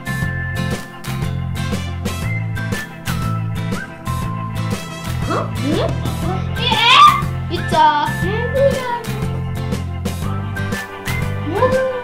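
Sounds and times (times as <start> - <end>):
background music with chords: 0.0 - 12.0.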